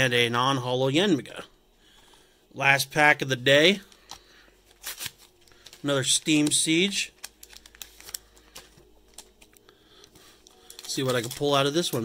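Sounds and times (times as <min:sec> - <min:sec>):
cards and plastic packaging rustling: 0:03.6 - 0:12.0.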